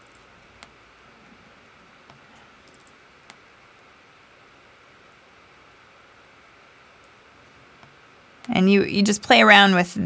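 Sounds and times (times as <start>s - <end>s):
faint clicks: 0.0s - 0.8s, 2.0s - 3.9s.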